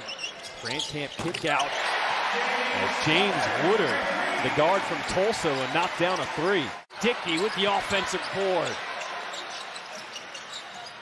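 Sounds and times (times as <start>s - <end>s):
arena crowd noise: 1.4s - 11.0s.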